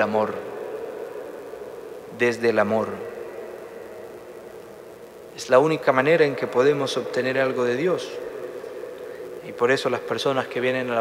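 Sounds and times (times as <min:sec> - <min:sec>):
faint hiss: 0:00.0 - 0:11.0
low hum: 0:00.0 - 0:11.0.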